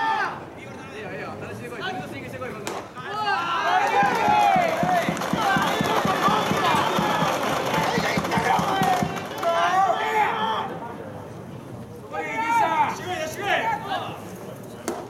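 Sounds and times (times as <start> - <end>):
crowd chanting and shouting: 2.8 - 11.1, 12.0 - 14.5
fast steady drumbeat: 4.0 - 9.2.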